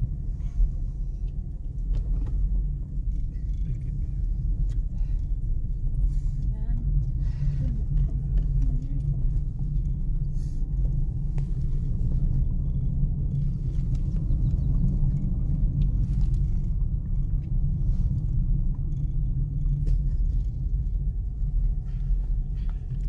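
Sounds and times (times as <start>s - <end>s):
car road and engine noise: 0.0s - 23.0s.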